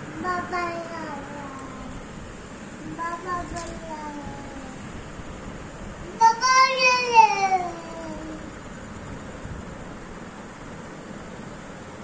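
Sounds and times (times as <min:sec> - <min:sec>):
toddler drawn-out vocal sound: 0:06.1 - 0:08.5.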